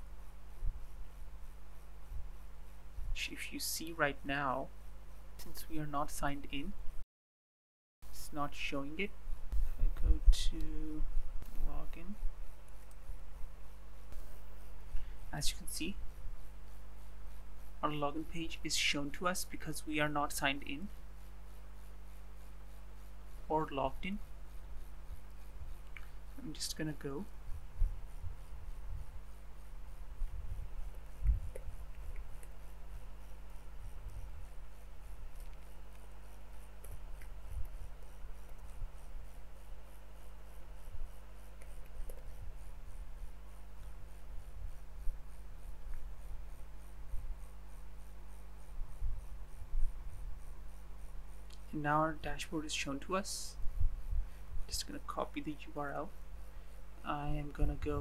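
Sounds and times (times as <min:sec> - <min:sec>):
low electrical hum: 0:00.0 - 0:07.0, 0:08.0 - 0:58.0.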